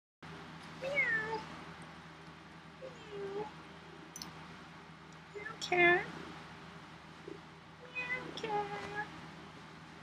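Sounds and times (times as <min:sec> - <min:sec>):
cat meowing: 0:00.8 - 0:01.4.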